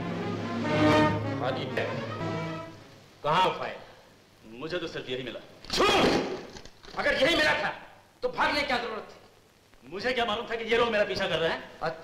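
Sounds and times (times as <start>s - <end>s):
film dialogue: 0.0s - 12.0s.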